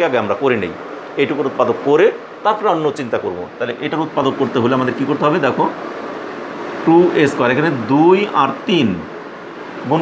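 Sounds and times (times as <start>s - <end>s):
man speaking: 0.0s - 5.8s, 6.8s - 9.1s
steady background hiss: 0.0s - 10.0s.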